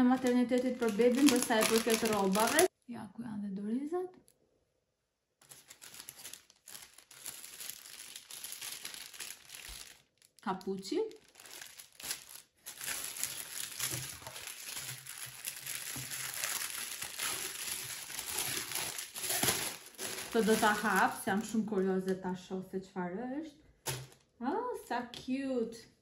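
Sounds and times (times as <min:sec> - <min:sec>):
plastic wrapping crinkling: 0:00.0 - 0:02.7, 0:05.4 - 0:21.7, 0:23.8 - 0:24.3.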